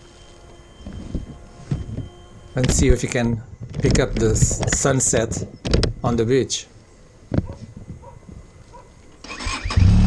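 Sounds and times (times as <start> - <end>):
wind rumble on microphone: 0.8 - 6.2, 7.2 - 8.7.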